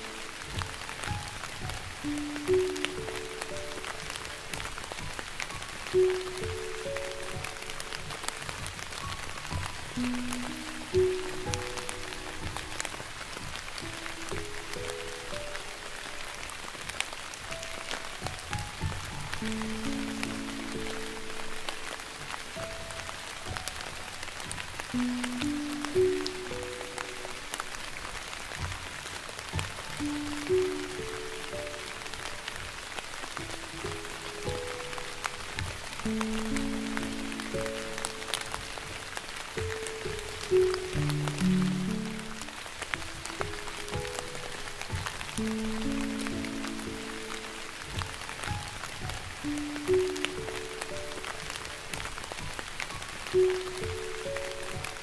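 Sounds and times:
light rain: 0:00.0 - 0:55.0
raindrops ticking: 0:00.0 - 0:55.0
soft slow piano music: 0:00.0 - 0:55.0.

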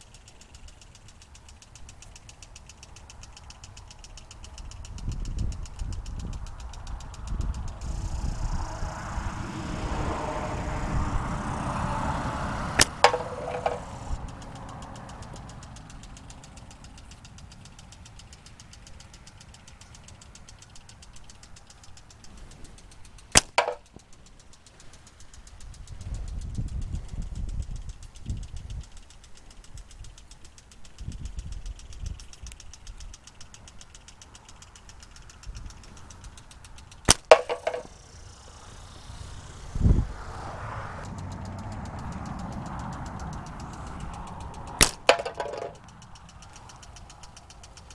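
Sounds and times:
slingshot band snapping: 0:00.0 - 0:47.9
passing vehicle rumble: 0:06.6 - 0:18.8, 0:35.4 - 0:47.9.

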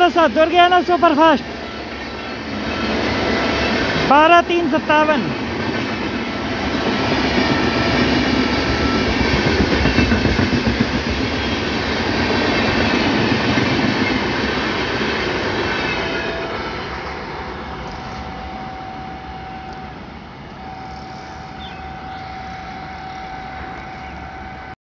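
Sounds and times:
train wheels rumbling on rails: 0:00.0 - 0:24.8.

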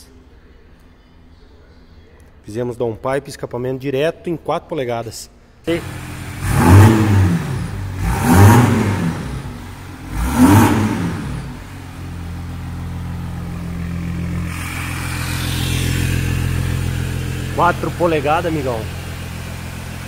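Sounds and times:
diesel engine revving and idling: 0:05.7 - 0:20.0.

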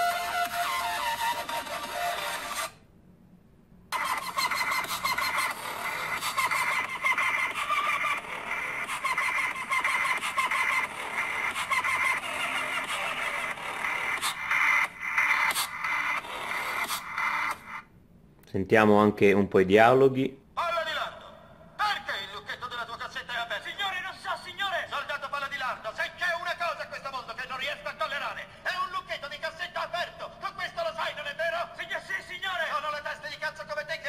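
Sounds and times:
dance music from phone speaker: 0:00.0 - 0:02.8, 0:03.9 - 0:17.9.

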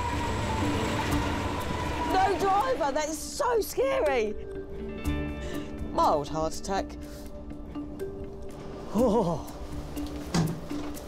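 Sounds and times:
electric train rumble and whine: 0:00.0 - 0:05.4.

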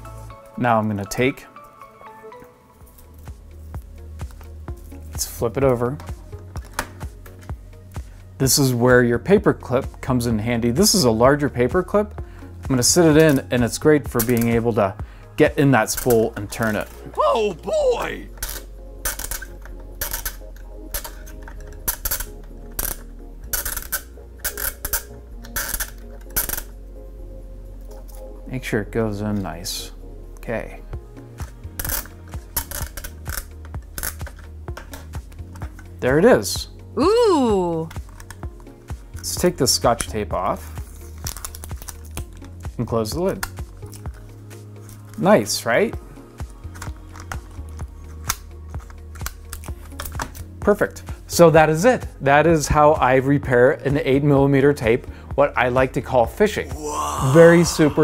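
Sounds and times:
background music low tone: 0:00.0 - 0:58.0.

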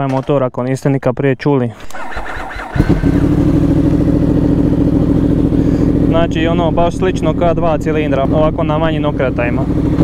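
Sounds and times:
electric starter cranking: 0:01.8 - 0:03.3
motorcycle engine idling: 0:01.9 - 0:10.0.

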